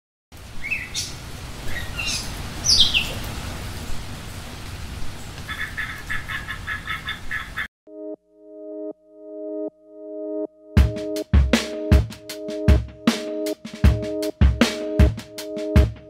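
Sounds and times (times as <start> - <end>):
rapid chattering bird call: 5.5 - 7.7.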